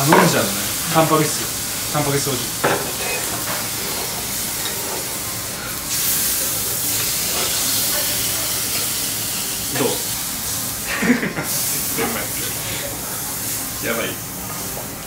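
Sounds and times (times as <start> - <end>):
meat sizzling on a grill: 0.0 - 15.0.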